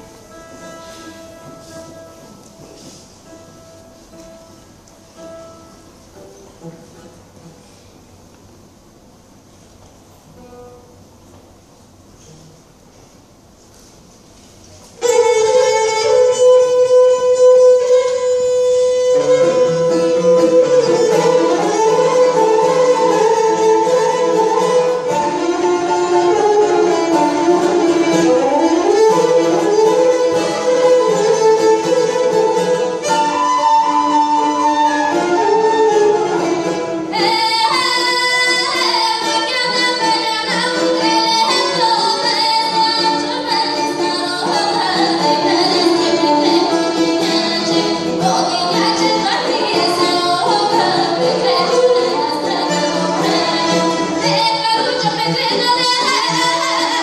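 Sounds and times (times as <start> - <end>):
folk instrument ensemble: 0.0 - 57.0
woman singing folk song: 37.1 - 57.0.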